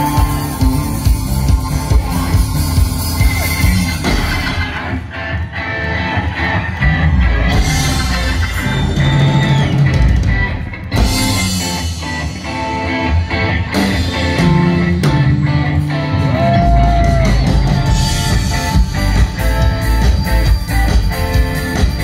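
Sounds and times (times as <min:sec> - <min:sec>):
electric guitar: 0:00.0 - 0:22.0
live rock band playing: 0:00.0 - 0:22.0.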